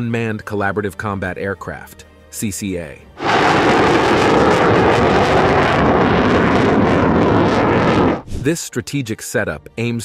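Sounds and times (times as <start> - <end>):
fighter jet flying past: 3.2 - 8.2.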